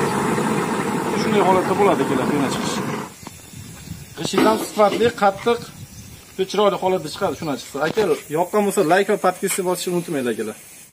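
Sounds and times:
faint steady hose hiss: 0.0 - 10.9
man speaking: 1.1 - 3.0, 6.4 - 10.6.

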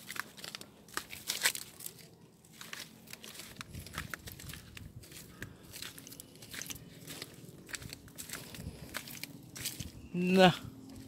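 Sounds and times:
dry leaves crunching underfoot: 0.0 - 11.0.

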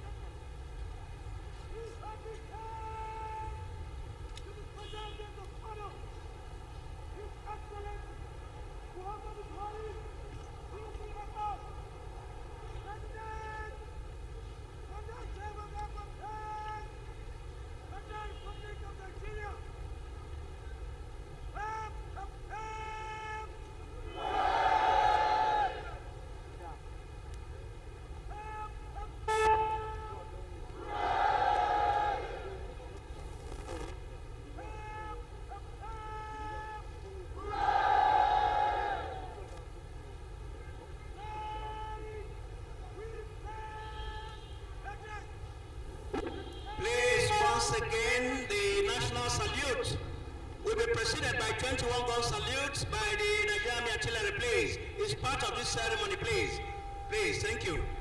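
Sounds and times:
person shouting words of command: 1.8 - 3.6, 21.5 - 24.2.

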